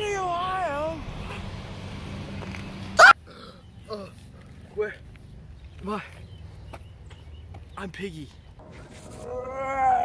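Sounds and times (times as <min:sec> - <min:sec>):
loud yelp: 0:03.0 - 0:03.2, 0:09.2 - 0:10.0.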